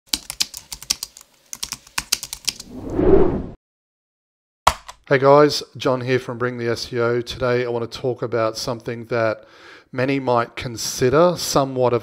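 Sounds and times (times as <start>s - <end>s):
rapid keyboard typing: 0.1s - 2.6s
rising swell of noise: 2.6s - 3.6s.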